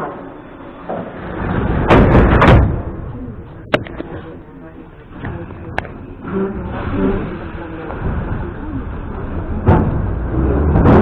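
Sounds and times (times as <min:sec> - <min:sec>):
doors slamming shut: 0:00.9 - 0:03.1
train doors sliding: 0:05.1 - 0:11.0.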